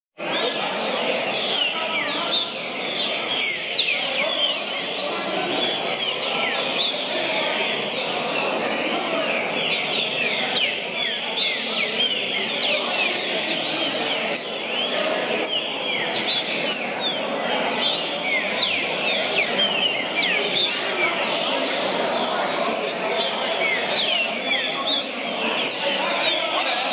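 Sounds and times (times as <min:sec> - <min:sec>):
birds singing whistled phrases: 0:00.2 - 0:07.2, 0:09.2 - 0:21.8
murmur of crowd voices: 0:00.2 - 0:26.9.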